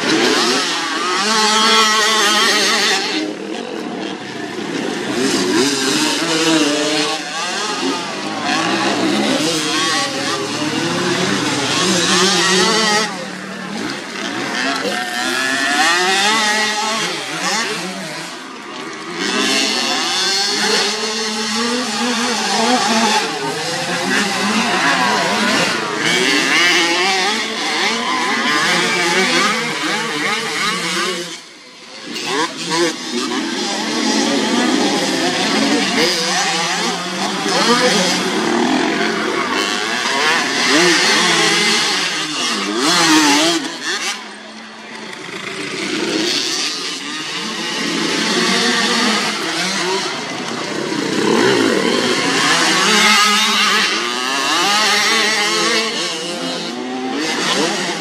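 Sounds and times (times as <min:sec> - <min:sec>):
motocross bike engines revving: 0:00.0 - 0:58.0.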